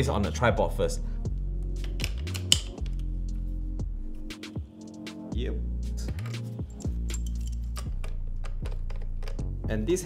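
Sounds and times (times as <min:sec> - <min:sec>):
background music with low held notes: 0:00.0 - 0:10.0
mounting hardware clicks and knocks: 0:07.1 - 0:09.5.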